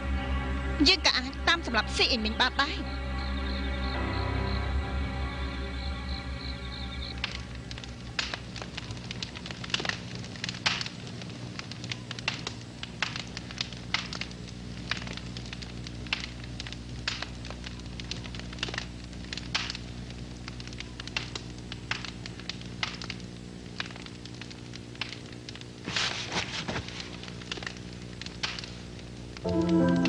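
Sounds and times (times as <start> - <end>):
steady low hum: 0.0 - 30.0
irregular crackling clicks: 7.0 - 30.0.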